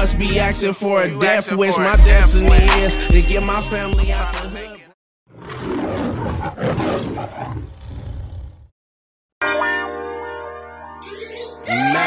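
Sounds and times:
deep rough lion roar: 5.3 - 8.7.

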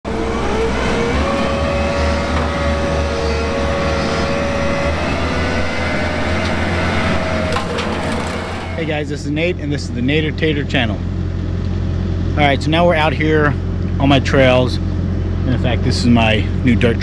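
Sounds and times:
hydraulic whine: 0.0 - 9.6
diesel engine running: 0.0 - 17.0.

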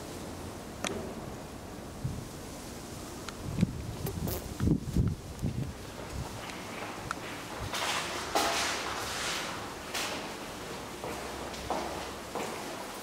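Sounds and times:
wind hiss: 0.0 - 7.8.

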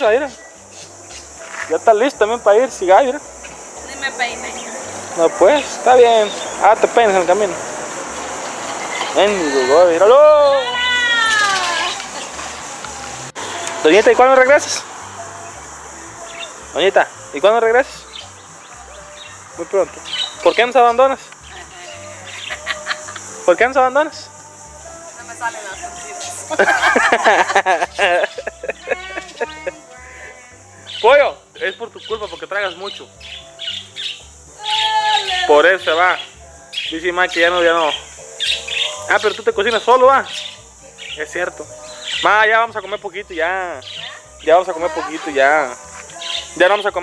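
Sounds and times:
budgerigars chirping and squawking: 2.8 - 7.6, 8.4 - 10.1, 18.0 - 23.3, 27.9 - 47.0.

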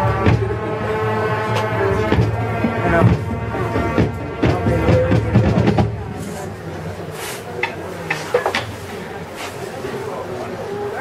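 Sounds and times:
brass chords: 0.0 - 8.0
marching band playing: 0.0 - 9.9
drum strikes: 1.5 - 9.0.

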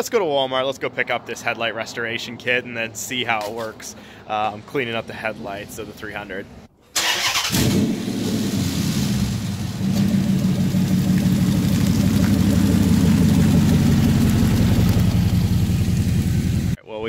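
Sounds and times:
car engine starting and idling: 6.9 - 16.8.

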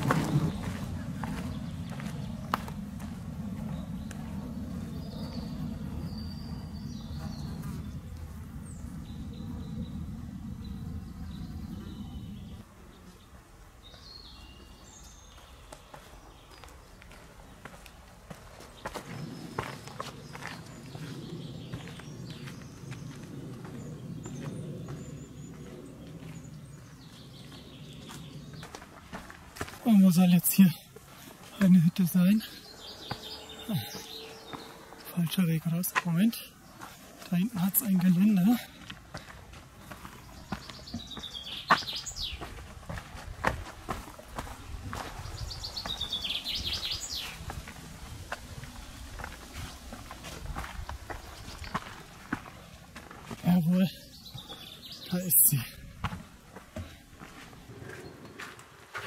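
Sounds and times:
footsteps on dirt trail: 0.0 - 9.2, 13.8 - 59.0
low microphone rumble: 0.0 - 12.9.

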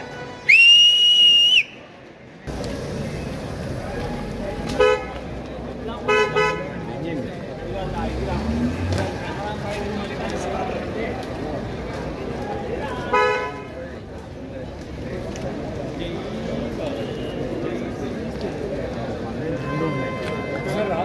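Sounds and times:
crowd chatter: 0.0 - 21.0
loud high whistle: 0.4 - 1.9
car horn toots: 4.8 - 5.1.

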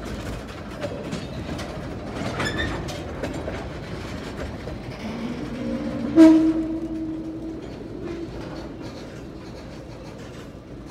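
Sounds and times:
train wheels rumbling on rail: 0.0 - 10.9
train horn: 5.0 - 8.9.

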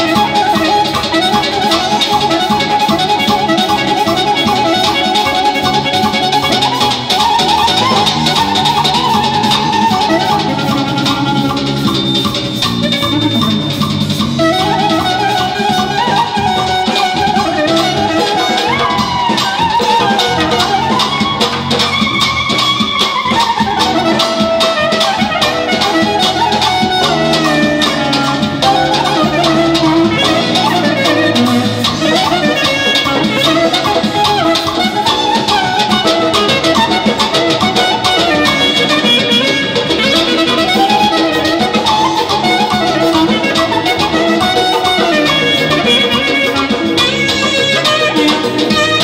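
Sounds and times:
clarinet folk dance melody: 0.0 - 49.0
rapid drum strokes: 0.0 - 49.0.

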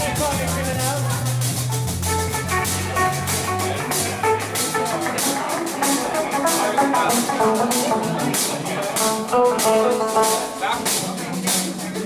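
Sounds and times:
reggae band playing: 0.0 - 12.0.

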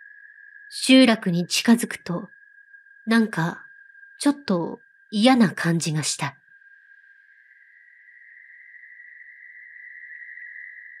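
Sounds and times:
steady high-pitched tone: 0.0 - 11.0
narration: 0.8 - 2.3, 3.1 - 3.6, 4.2 - 6.3.

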